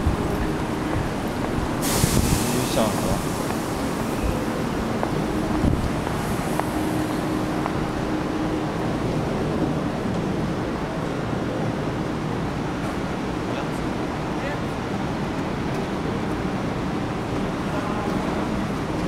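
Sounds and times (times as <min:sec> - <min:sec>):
railway platform background noise: 0:00.0 - 0:19.0.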